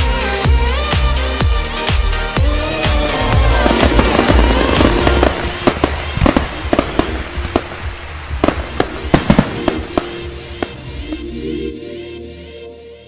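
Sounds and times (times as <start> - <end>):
background music: 0.0 - 13.0
dense crackling: 2.4 - 11.6.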